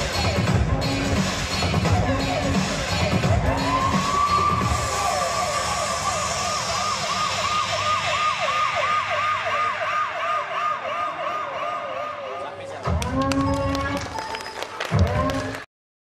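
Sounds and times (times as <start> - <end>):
emergency siren wail and yelp: 3.6 - 12.5.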